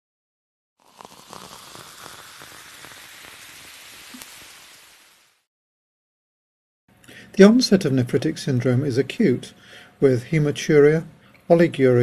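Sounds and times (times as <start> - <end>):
cola fizzing in a glass: 0.8 - 5.5.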